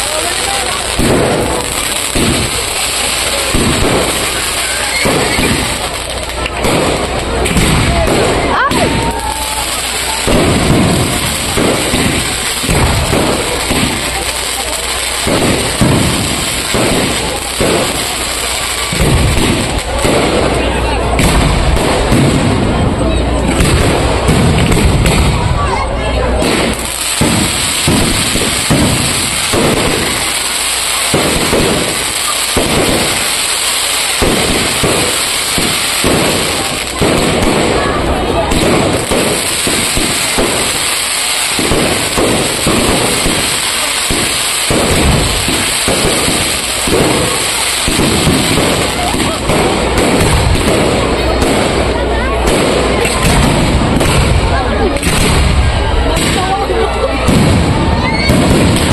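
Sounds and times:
fireworks bangs and bursts: 0.0 - 58.9.

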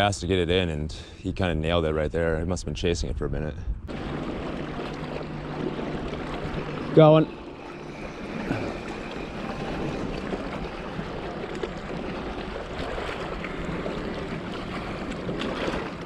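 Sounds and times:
wind noise: 0.9 - 6.9
small waves lapping: 3.9 - 16.0.

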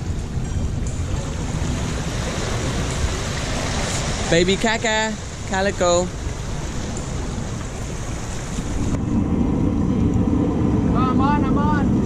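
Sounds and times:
wind on microphone: 0.0 - 12.0
sea washing against rocks: 1.2 - 9.0.

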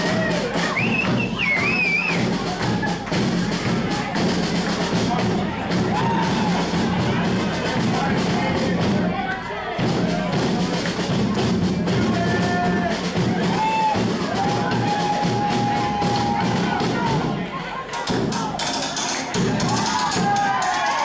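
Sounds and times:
marching bass and snare drums: 0.0 - 21.0
voices shouting and whooping: 5.8 - 7.2, 12.1 - 21.0.

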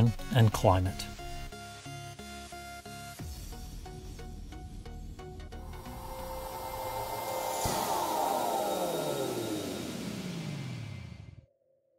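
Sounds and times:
whoosh: 5.6 - 11.3
tones gliding downward: 5.6 - 11.4.

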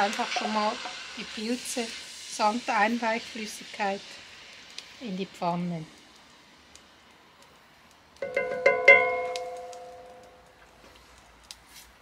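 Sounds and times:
metal bowl clinking and ringing: 8.2 - 10.4.

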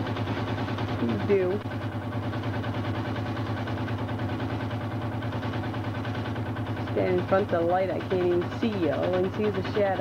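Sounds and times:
machine humming with rapid pulse: 0.0 - 10.0.

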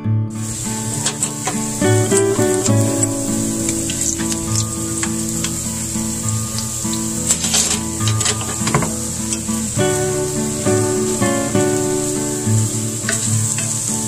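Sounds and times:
acoustic guitar music: 0.0 - 14.0
hot oil sizzling: 0.3 - 14.0.

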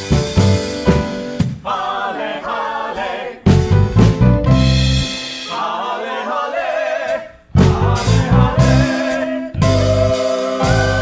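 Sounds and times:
band with drums and bass: 0.0 - 1.7, 3.4 - 5.6, 7.5 - 11.0
choir singing in harmony: 1.5 - 3.5, 5.2 - 11.0.

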